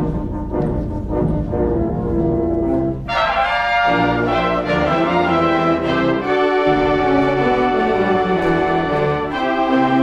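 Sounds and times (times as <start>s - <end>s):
symphonic band playing chords: 0.0s - 10.0s.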